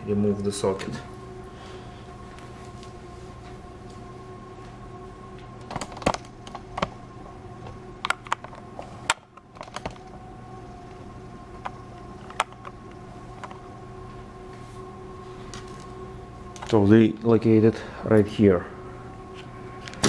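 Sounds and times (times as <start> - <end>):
steady hum with faint whine: 0.0 - 20.0.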